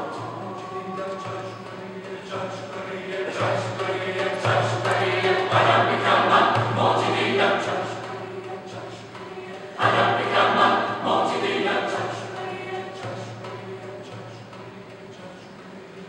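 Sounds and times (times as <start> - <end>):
mixed choir singing: 0.0 - 16.0.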